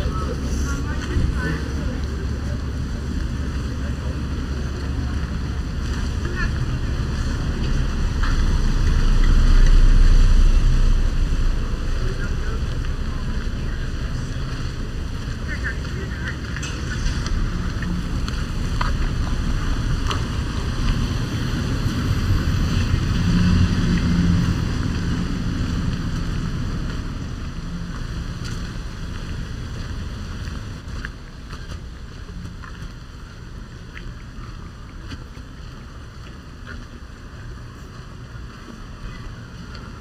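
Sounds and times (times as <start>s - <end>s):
wind rumbling on microphone: 0.0s - 40.0s.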